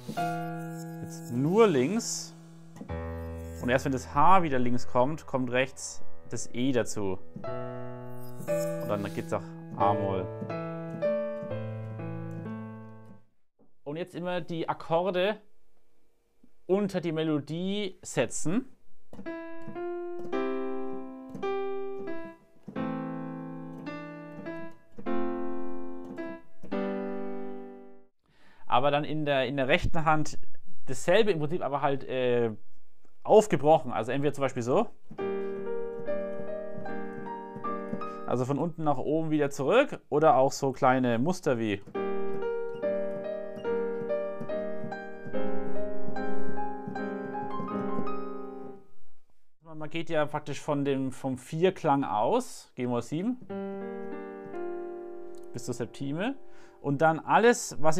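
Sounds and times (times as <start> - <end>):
digital piano playing hymn: 0.0 - 13.3, 19.1 - 28.1, 34.1 - 39.7, 40.9 - 49.0, 52.4 - 57.9.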